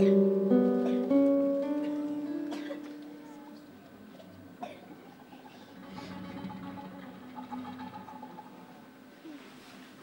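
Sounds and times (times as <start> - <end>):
classical guitar played softly: 0.0 - 4.6, 5.2 - 8.9.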